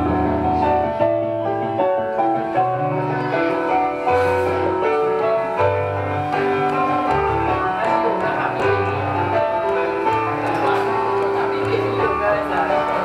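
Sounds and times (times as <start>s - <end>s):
piano playing: 0.0s - 13.0s.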